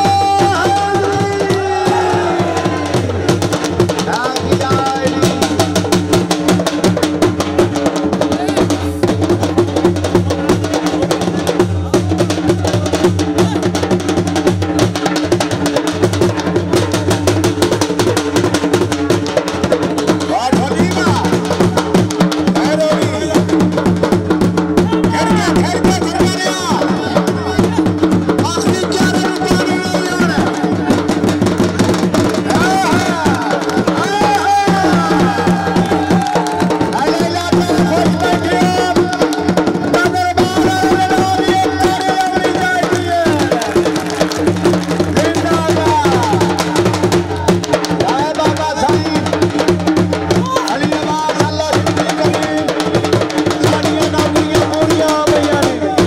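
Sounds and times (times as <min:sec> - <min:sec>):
drums in fast dance rhythm: 0:00.0 - 0:56.0.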